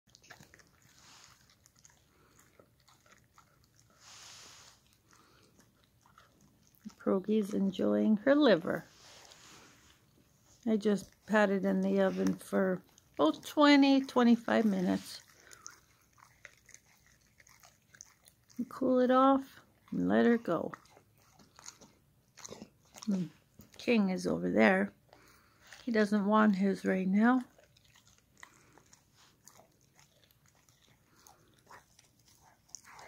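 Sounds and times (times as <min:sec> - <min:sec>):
dog chewing: 0:00.1 - 0:33.0.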